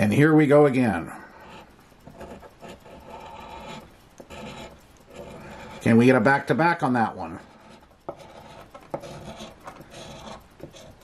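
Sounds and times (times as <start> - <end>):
coin scratching lottery ticket: 0.0 - 11.0.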